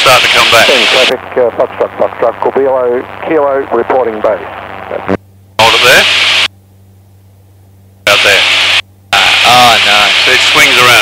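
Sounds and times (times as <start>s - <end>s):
hissy radio speech: 0.0s - 6.5s, 8.1s - 11.0s
faint engine hum: 0.7s - 9.4s.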